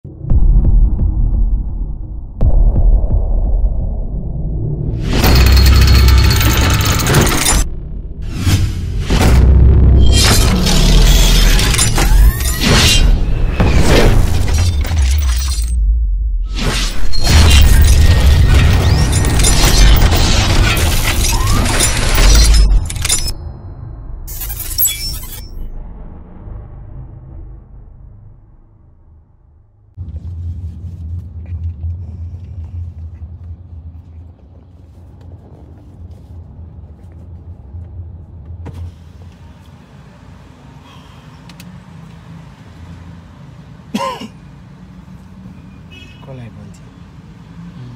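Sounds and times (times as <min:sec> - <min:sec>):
deep bass rumble: 0:00.0 - 0:06.6, 0:07.6 - 0:11.4, 0:25.6 - 0:38.6
cinematic music: 0:00.1 - 0:14.9
glass shatter effects: 0:05.1 - 0:07.7, 0:10.0 - 0:15.8, 0:16.6 - 0:23.6, 0:24.3 - 0:25.7.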